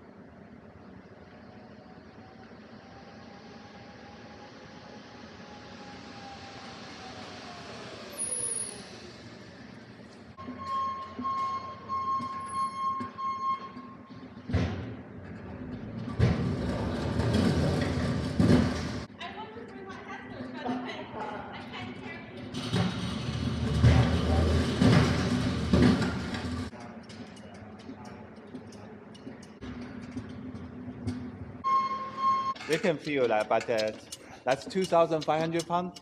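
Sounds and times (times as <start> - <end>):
pallet jack whine: 5.4 - 19.1, 22.4 - 26.7
steel wheels rumbling and rattling: 13.7 - 31.6, 32.6 - 36.0.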